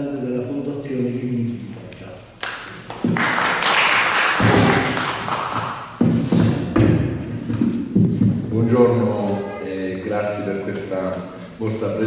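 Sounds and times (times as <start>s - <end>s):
audience applause: 3.0s - 5.7s
microphone handling thumps: 6.0s - 8.6s.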